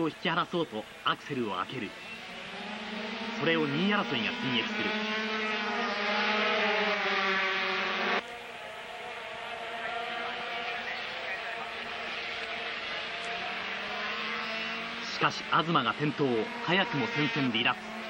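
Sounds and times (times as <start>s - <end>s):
racing motorcycles at high revs: 1.6s - 18.0s.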